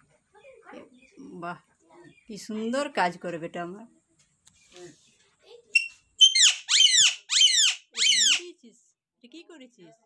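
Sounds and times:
parakeet calling: 5.8 - 8.5.

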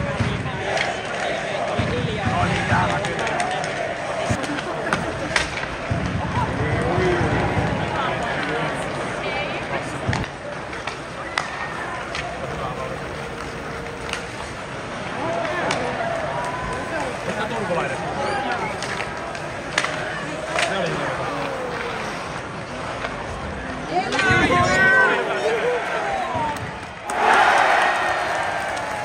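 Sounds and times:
hockey sticks and puck clacking: 0.0 - 27.5
crowd chatter: 0.0 - 29.0.

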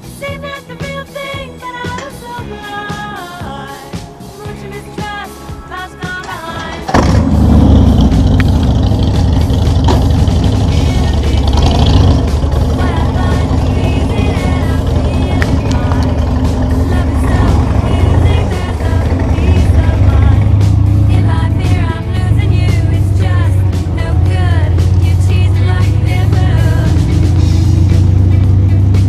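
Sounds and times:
music playing: 0.0 - 29.0
motorcycle engine running: 0.8 - 29.0.

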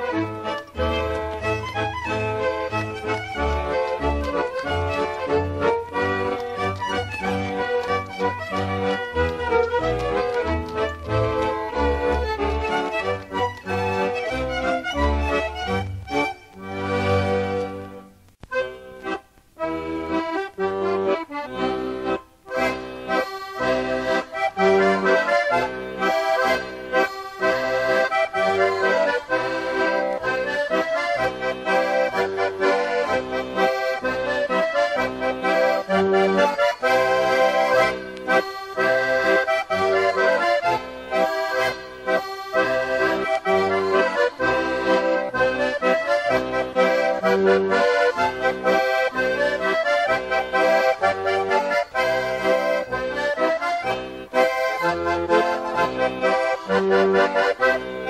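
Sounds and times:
folk accordion music: 0.0 - 58.0.

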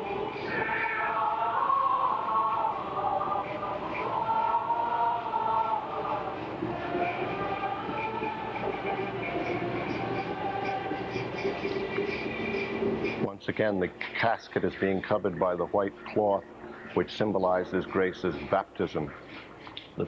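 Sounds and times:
choir singing chant: 0.0 - 13.2
man speaking: 13.3 - 16.4.

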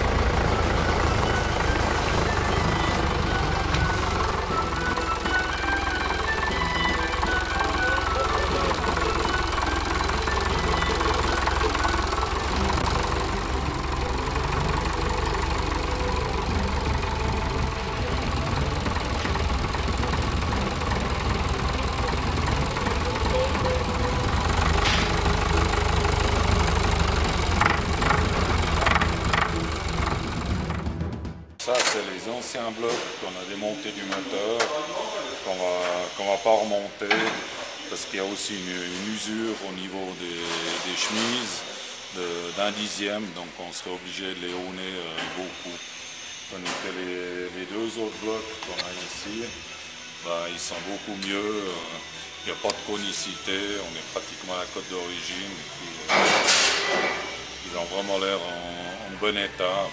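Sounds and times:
melody playing: 0.0 - 30.7
tractor engine running: 0.0 - 31.6.

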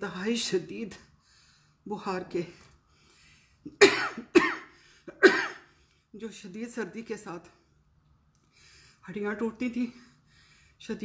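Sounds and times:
woman coughing hard: 3.7 - 5.7.

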